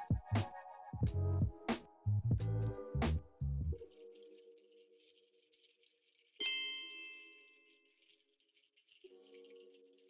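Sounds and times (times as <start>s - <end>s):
ding sound effect: 6.4s - 7.6s.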